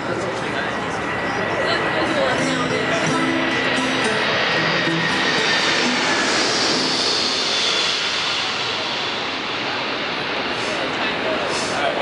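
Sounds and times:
loud steady rushing noise: 0:00.0 - 0:12.0
guitar notes: 0:02.1 - 0:07.3
harmonica notes: 0:02.2 - 0:07.3.

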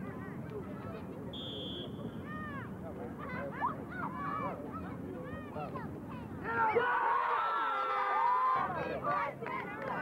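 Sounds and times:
referee's whistle: 0:01.4 - 0:02.1.

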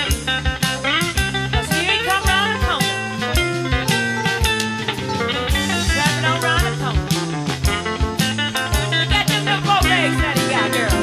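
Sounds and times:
bass line: 0:00.0 - 0:11.0
drum kit beat: 0:00.0 - 0:11.0
electric guitar lead: 0:00.0 - 0:11.0.

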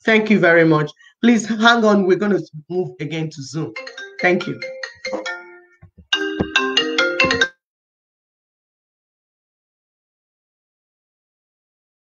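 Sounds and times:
marimba ringtone melody: 0:03.8 - 0:07.6.

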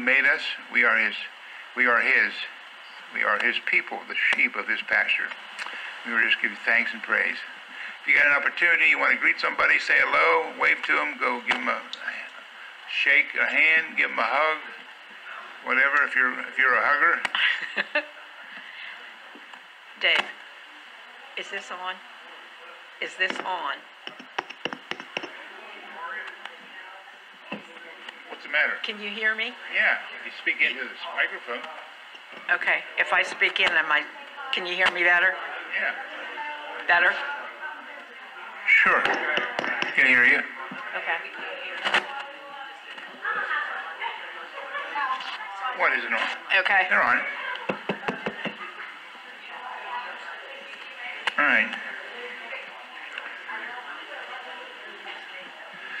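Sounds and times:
faint room noise: 0:00.0 - 0:56.0
faint voices: 0:00.0 - 0:56.0
microphone tapping: 0:23.3 - 0:25.4
knock on microphone: 0:24.1 - 0:25.3.

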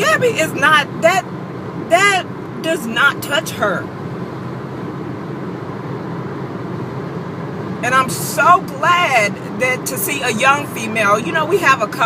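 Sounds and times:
person speaking: 0:00.0 - 0:01.2
car cabin engine and road rumble: 0:00.0 - 0:12.0.

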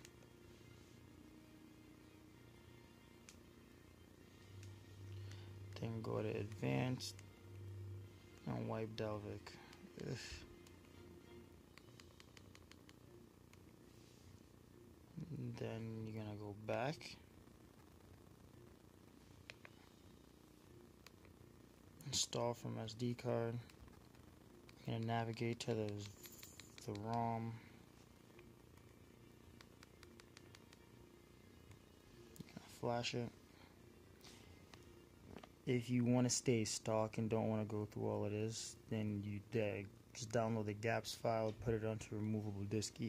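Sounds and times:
quiet background hum: 0:00.0 - 0:43.0.

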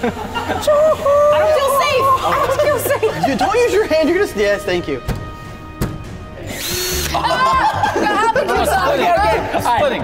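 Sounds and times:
cordless drill motor whirring: 0:06.5 - 0:07.2.

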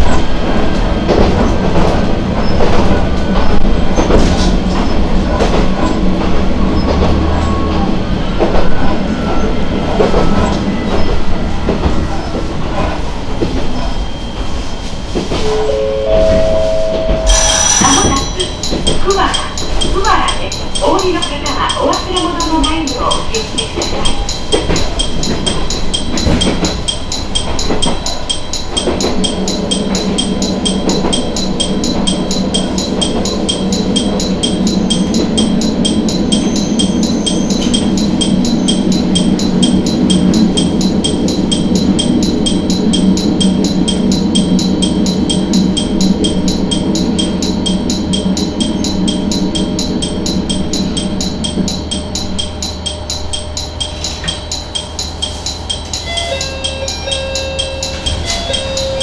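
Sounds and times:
railcar diesel engine: 0:00.0 - 0:59.0
short chime melody: 0:15.5 - 0:18.7
fast steady ticking: 0:17.3 - 0:59.0.

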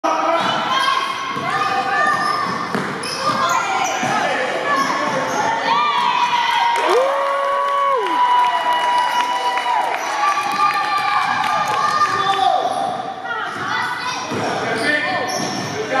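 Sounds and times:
children and spectators shouting: 0:05.6 - 0:12.6.

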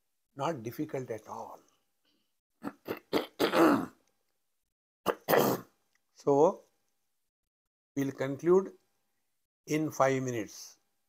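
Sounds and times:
man clearing his throat: 0:02.6 - 0:04.0, 0:05.1 - 0:05.7.

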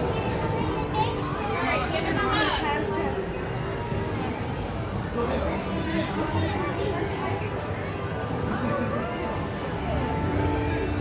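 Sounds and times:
children talking and playing: 0:00.0 - 0:11.0
crowd chatter: 0:00.0 - 0:11.0.

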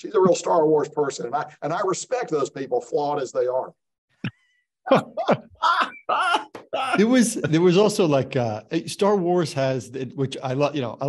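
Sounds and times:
person laughing: 0:04.9 - 0:07.4.

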